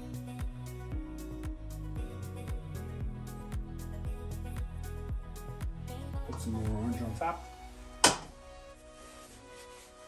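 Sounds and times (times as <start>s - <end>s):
quiet background music: 0.0s - 10.0s
sharp knock: 8.0s - 8.3s.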